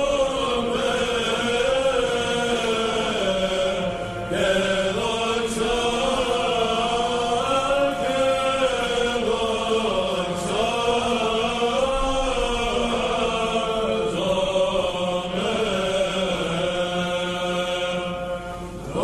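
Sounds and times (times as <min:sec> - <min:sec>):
low held vocal drone: 0:00.0 - 0:19.0
male choir chanting: 0:00.0 - 0:19.0.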